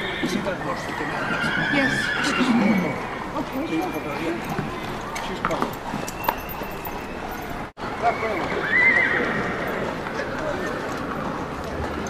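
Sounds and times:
horse whinnying: 0.0s - 5.2s, 8.0s - 9.9s.

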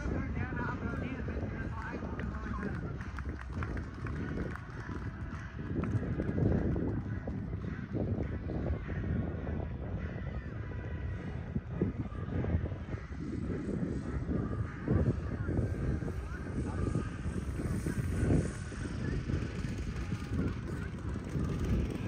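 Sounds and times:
faint voices: 0.0s - 22.0s
wind buffeting microphone: 0.0s - 22.0s.

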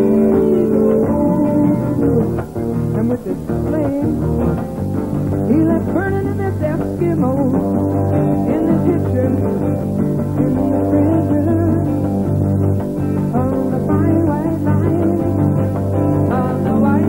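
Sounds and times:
woman singing into a microphone: 0.0s - 4.2s, 5.5s - 12.2s
guitar accompaniment: 0.0s - 17.0s.

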